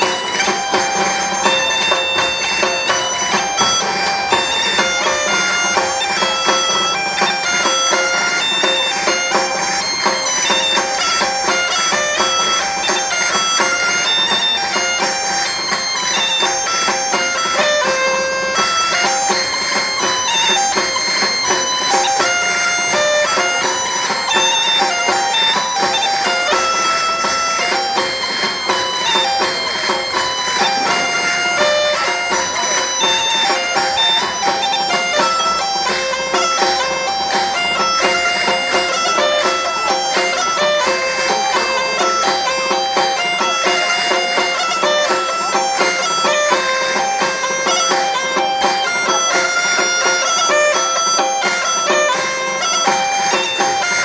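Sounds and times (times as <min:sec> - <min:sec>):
bagpipe drone: 0:00.0 - 0:54.0
bagpipes playing a lively tune: 0:00.0 - 0:54.0.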